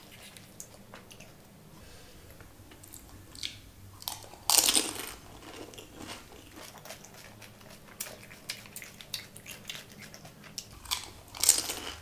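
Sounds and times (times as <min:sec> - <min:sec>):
close-up chewing: 0:02.7 - 0:12.0.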